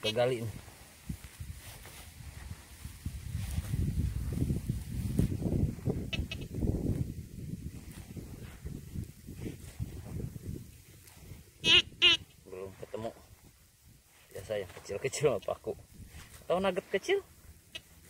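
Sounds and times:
hand and coil scraping soil: 14.1 - 18.0.

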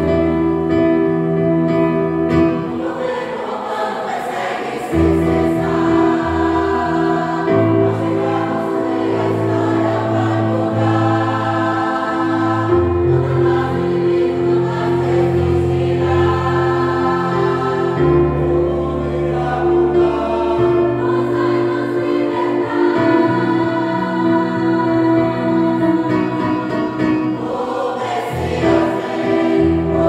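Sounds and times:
congregation singing in chorus: 0.0 - 30.0.

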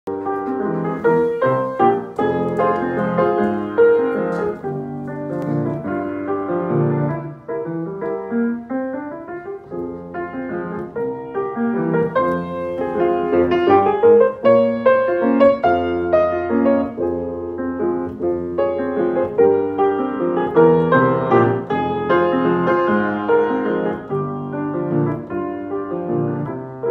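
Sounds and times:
grand piano playing: 0.1 - 26.9.

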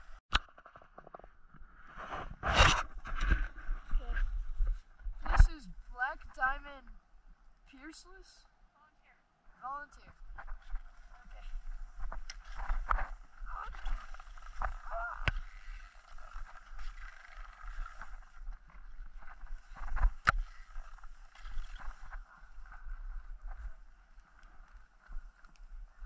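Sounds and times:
wind rumble on microphone: 1.8 - 6.0
skis scraping over snow: 10.8 - 26.0.

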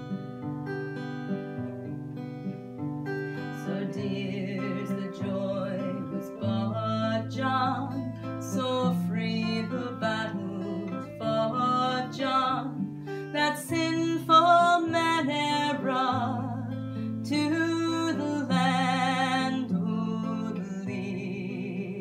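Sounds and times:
acoustic guitar: 0.0 - 22.0
woman singing folk song: 0.0 - 22.0.

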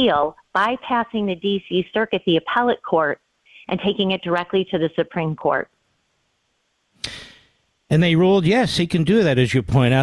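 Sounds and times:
man's sharp intake of breath: 7.0 - 7.6.

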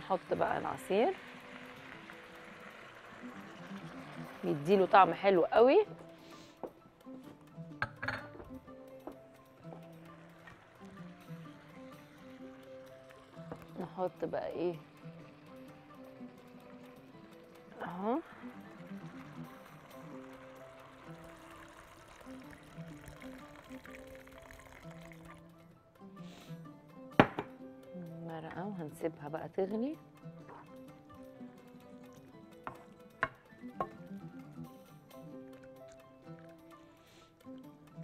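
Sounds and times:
woman's voice: 0.0 - 1.2, 4.2 - 5.9, 13.8 - 14.8, 17.8 - 18.3, 28.1 - 30.0
background music: 0.0 - 38.0
liquid pouring into hot pan: 0.2 - 5.3, 9.7 - 25.5.

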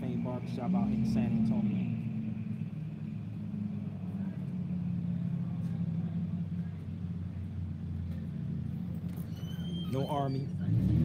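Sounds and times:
low motor rumble: 0.0 - 11.0.

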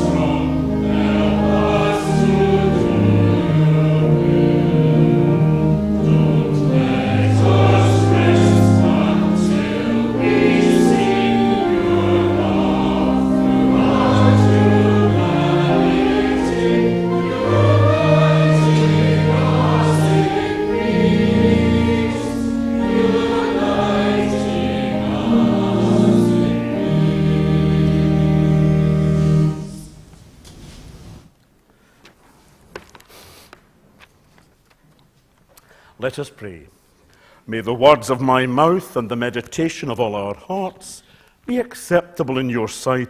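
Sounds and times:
mixed choir singing in harmony: 0.0 - 30.0.

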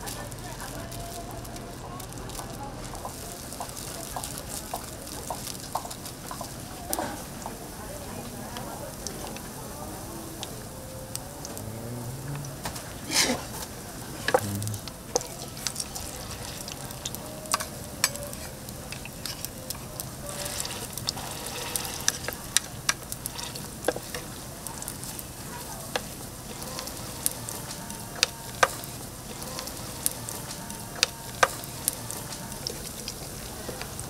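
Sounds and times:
patties sizzling in oil: 0.0 - 34.0.

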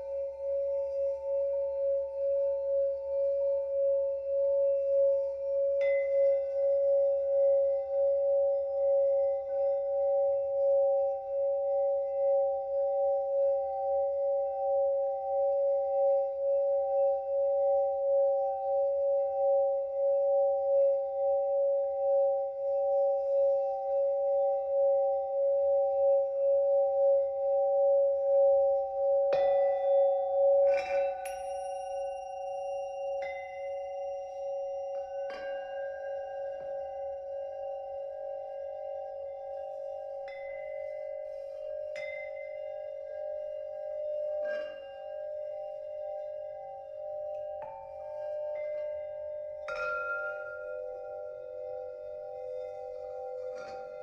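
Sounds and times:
singing bowls ringing: 0.0 - 54.0
mallet striking singing bowl: 30.7 - 32.1.

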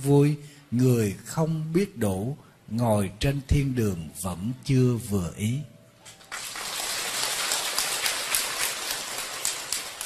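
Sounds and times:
audience applauding: 6.2 - 10.0.

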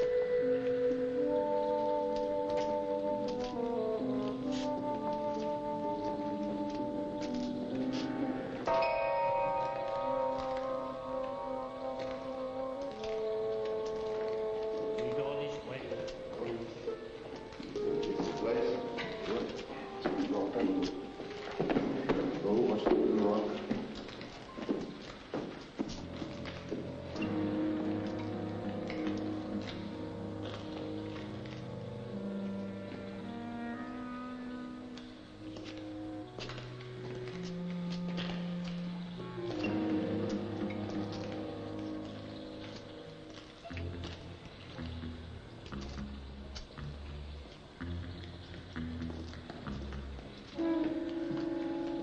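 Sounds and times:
voices without clear words: 0.0 - 24.8
orchestral film music: 0.0 - 49.0, 49.7 - 52.0.

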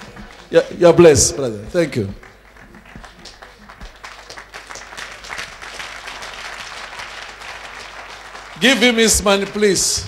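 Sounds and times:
crowd applauding: 0.0 - 10.0.

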